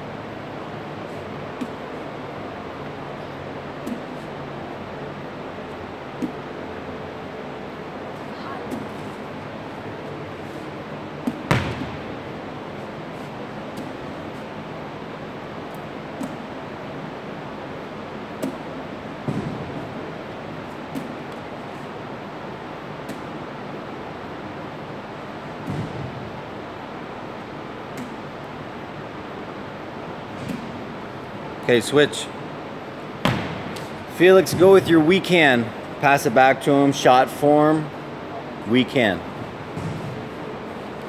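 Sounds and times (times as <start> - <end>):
room noise hiss: 0.0 - 41.0
medicine ball slapping into hands: 11.2 - 12.1, 16.1 - 16.5, 18.4 - 20.0, 23.0 - 23.4, 25.6 - 26.4, 33.2 - 34.6.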